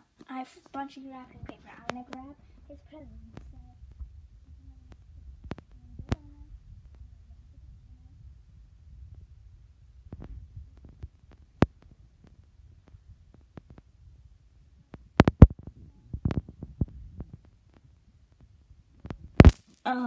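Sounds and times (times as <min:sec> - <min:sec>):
sharp clicks and knocks: 0:14.9 - 0:17.8.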